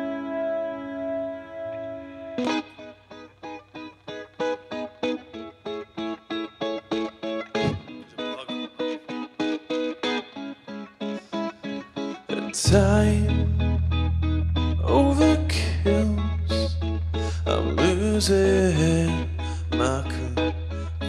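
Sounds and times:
electric guitar riff: 0.0s - 21.0s.

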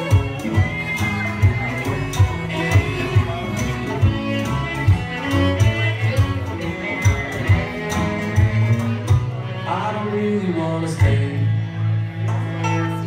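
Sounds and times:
drums keeping a steady beat: 0.0s - 9.5s
bluegrass string band playing: 0.0s - 13.0s
fiddle: 0.0s - 13.0s.

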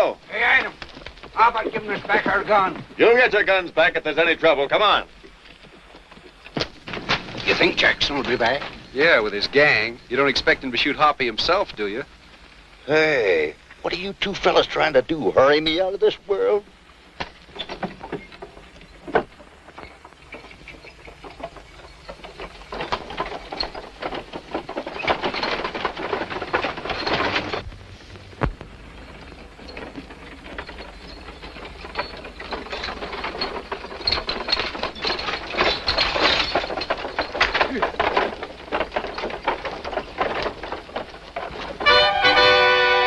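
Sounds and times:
horses galloping hoofbeats: 0.0s - 43.0s
brass orchestral music: 41.8s - 43.0s.

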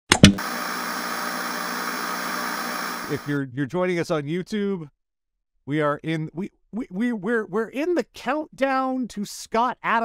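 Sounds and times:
static hiss: 0.4s - 3.3s.

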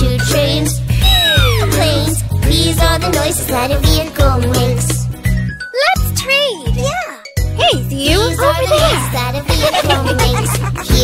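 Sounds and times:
upbeat children's music: 0.0s - 11.0s
child speaking in sing-song: 5.8s - 10.3s.

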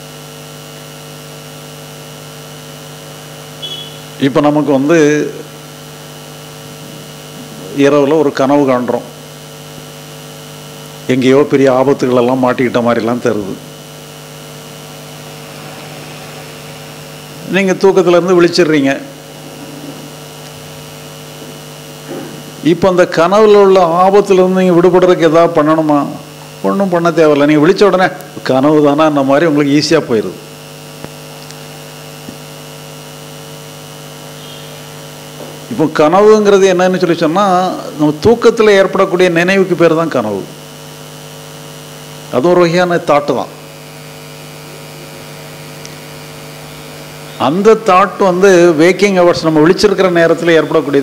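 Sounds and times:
electrical mains hum: 0.0s - 51.0s.

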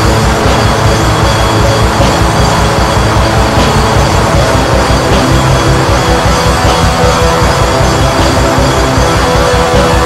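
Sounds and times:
distorted guitars: 0.0s - 10.0s.

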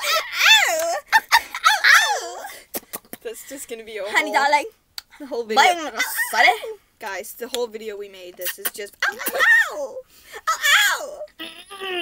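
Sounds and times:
girls laughing: 0.0s - 2.6s
girls shrieking: 1.6s - 2.5s.

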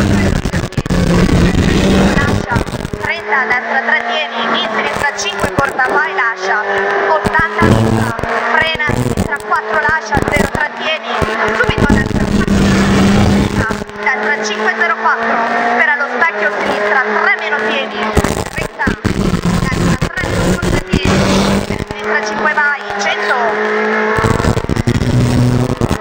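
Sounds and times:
rally car engine at racing speed: 0.0s - 26.0s.

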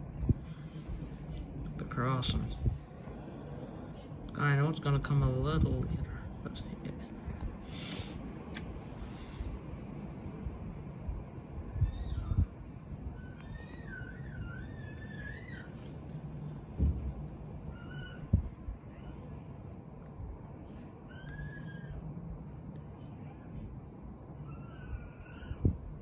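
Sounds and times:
low rumble: 0.0s - 26.0s
wavering animal calls: 11.8s - 16.0s, 17.7s - 19.4s, 20.9s - 22.1s, 24.3s - 26.0s.

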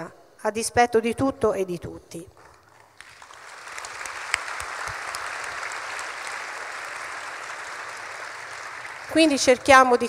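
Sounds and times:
audience applauding: 2.9s - 10.0s.

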